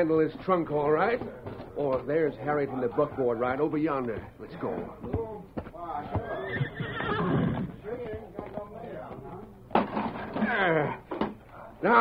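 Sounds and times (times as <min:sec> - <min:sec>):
hooves clip-clopping: 0:00.2 - 0:09.6
horse whinnying: 0:06.1 - 0:07.8.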